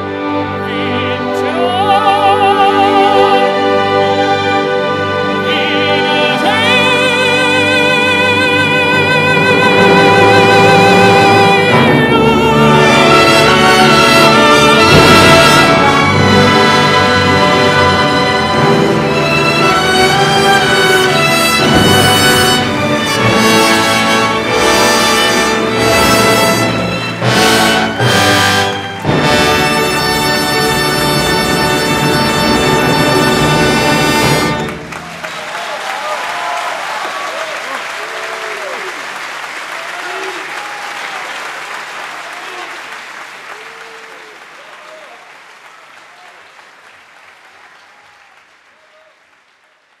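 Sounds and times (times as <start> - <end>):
operatic tenor singing: 0.0 - 34.7
symphony orchestra: 0.0 - 46.8.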